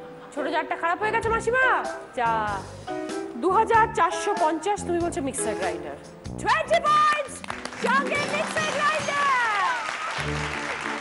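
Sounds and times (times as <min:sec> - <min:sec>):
people clapping: 0:07.3 - 0:11.0.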